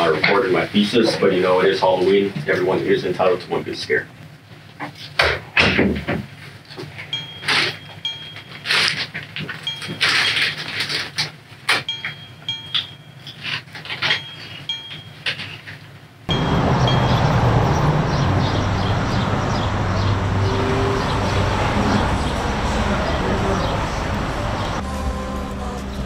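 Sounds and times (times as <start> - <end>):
street ambience: 6.8 - 26.0
low traffic rumble: 16.3 - 26.0.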